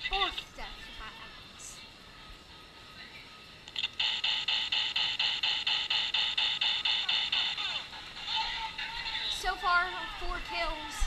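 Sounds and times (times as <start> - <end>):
laser gun beeping shots: 3.8 - 7.9.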